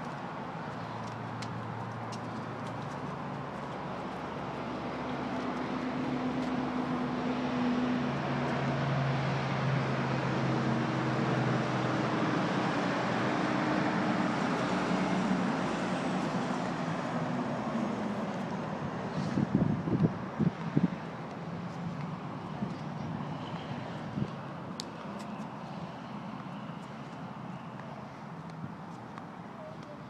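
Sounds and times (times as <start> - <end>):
outdoor traffic noise: 0.0 - 30.0
vehicle engine hum: 0.0 - 30.0.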